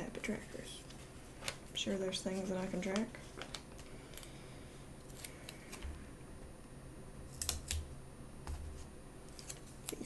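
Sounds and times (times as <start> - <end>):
paper stickers peeling: 5.0 - 5.8.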